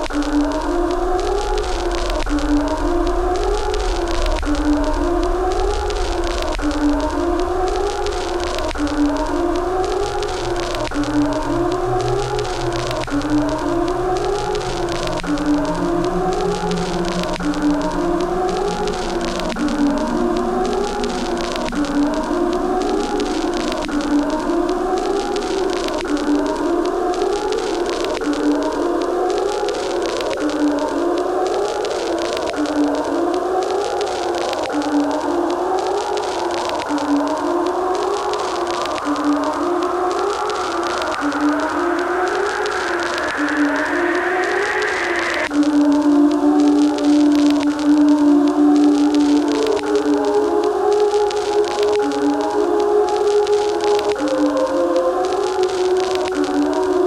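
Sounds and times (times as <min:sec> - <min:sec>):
low steady hum: 0:00.0 - 0:27.0
eerie wailing tone: 0:00.0 - 0:57.0.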